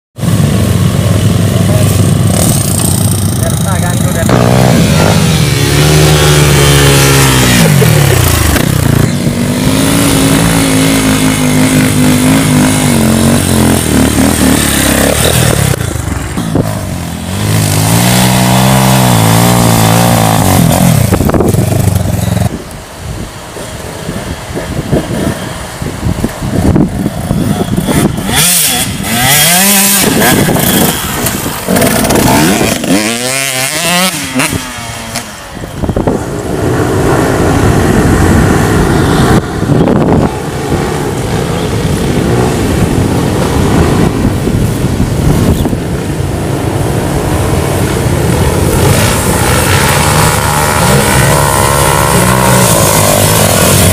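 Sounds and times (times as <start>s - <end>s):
dirt bike engines revving: 0.2s - 53.9s.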